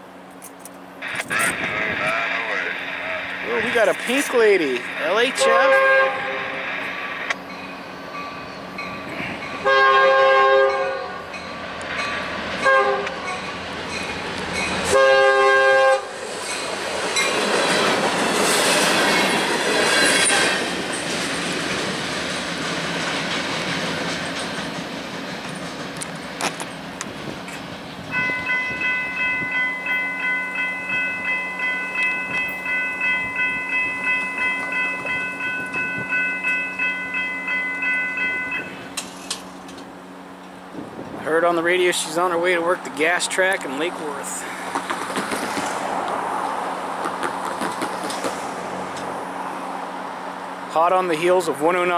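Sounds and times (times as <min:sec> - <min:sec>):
wheels rumbling on rails: 0:00.0 - 0:51.9
locomotive air horn blasts: 0:05.4 - 0:06.6, 0:09.6 - 0:11.3, 0:12.6 - 0:13.2, 0:14.9 - 0:16.1
crossing bell ringing: 0:07.4 - 0:15.9, 0:28.1 - 0:40.4.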